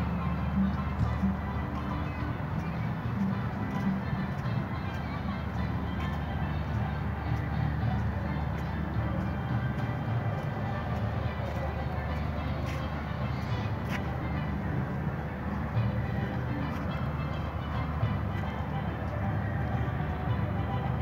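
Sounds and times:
distant voices: 0.0 - 21.0
outdoor background music: 0.0 - 21.0
steady low rumble: 0.0 - 21.0.

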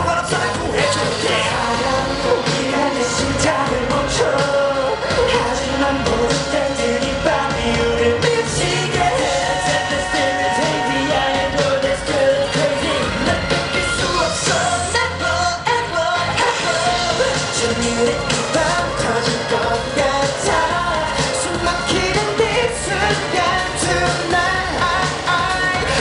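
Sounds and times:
male group singing: 0.0 - 26.0
pop backing track with beat: 0.0 - 26.0.

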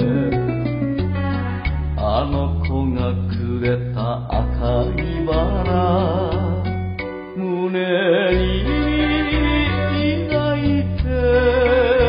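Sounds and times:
sharply struck notes: 0.0 - 2.8
held bass notes: 0.0 - 7.2, 8.3 - 12.0.

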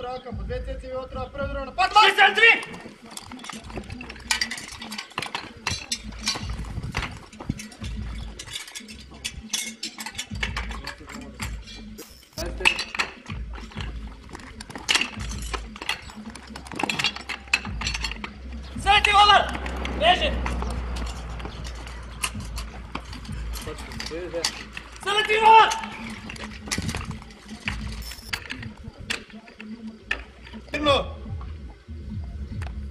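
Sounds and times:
metal couplings clinking: 1.9 - 30.8
low rumble: 17.8 - 24.2.

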